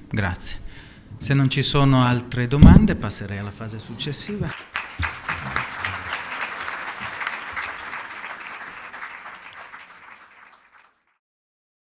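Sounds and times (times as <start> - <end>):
audience applauding: 4.4 - 11.2.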